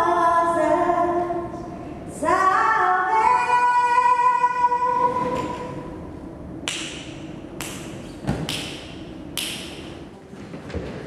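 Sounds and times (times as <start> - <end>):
sharp knocks echoing in room: 6.6 - 11.0.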